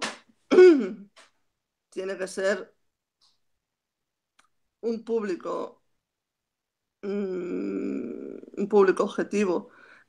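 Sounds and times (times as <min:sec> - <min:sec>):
person clearing throat: 0:00.5 - 0:01.1.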